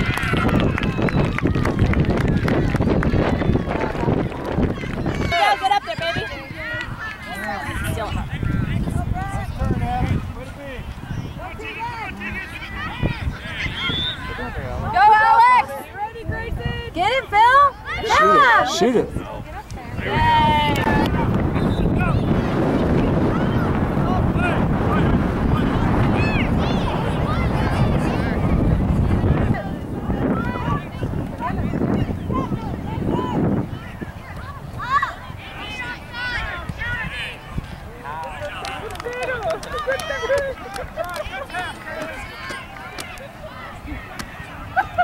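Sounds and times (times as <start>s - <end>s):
children calling and shouting: 0.0s - 45.0s
wind buffeting microphone: 0.0s - 45.0s
distant shouts: 10.2s - 18.7s.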